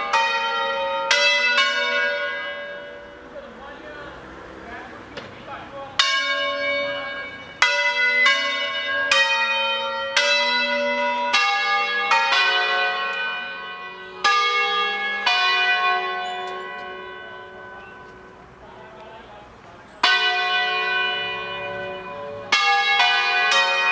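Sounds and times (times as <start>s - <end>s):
church bells pealing: 0.0s - 23.9s.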